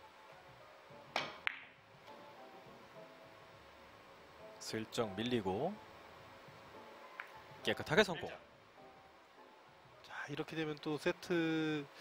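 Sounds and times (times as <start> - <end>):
faint background music: 0.0 - 12.0
cue striking ball: 1.1 - 1.8
billiard balls clicking: 1.2 - 2.2.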